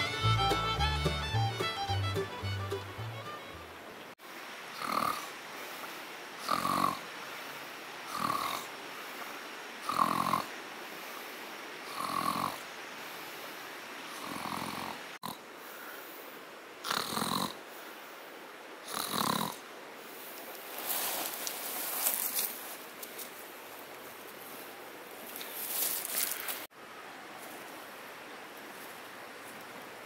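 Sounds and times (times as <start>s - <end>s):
man snoring: 4.8s - 5.3s, 6.4s - 7.0s, 8.1s - 8.6s, 11.9s - 12.6s, 18.9s - 19.6s.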